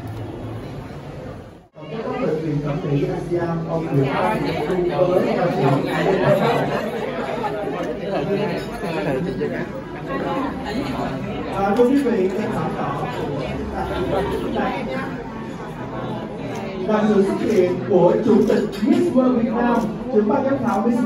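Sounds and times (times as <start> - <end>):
echoing chatter of people: 0.0 - 21.0.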